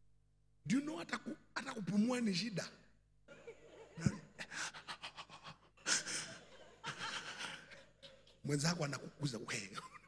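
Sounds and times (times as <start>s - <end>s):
man panting hard: 4.4s - 6.4s.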